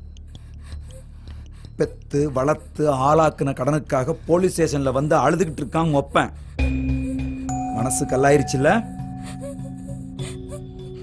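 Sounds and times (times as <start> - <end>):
man speaking: 7.7 - 8.9.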